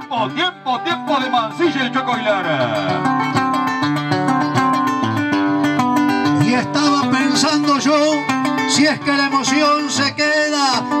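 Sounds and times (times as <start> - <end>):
acoustic guitar plucking: 0.0 - 11.0.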